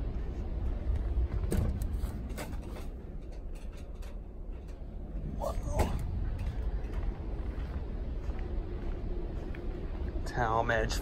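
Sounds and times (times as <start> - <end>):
low handling rumble: 0.0 - 11.0.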